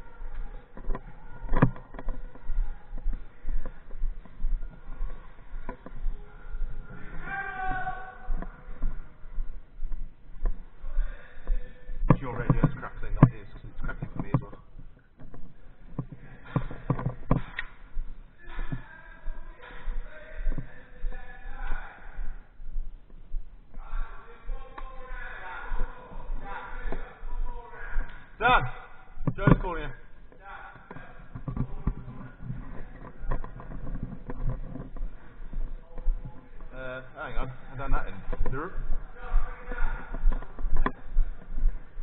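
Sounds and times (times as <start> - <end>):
indistinct voices: 0.0 - 22.7, 23.6 - 42.0.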